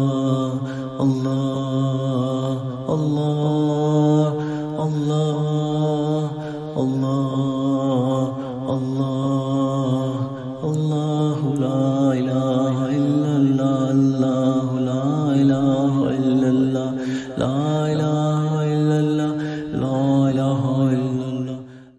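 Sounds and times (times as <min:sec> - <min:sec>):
person chanting: 0:00.0 - 0:21.9.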